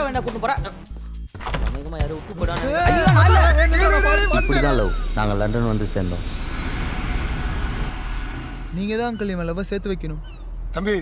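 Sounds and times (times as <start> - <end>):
person speaking: 2.5 - 5.1
jet engine noise in flight: 6.2 - 8.8.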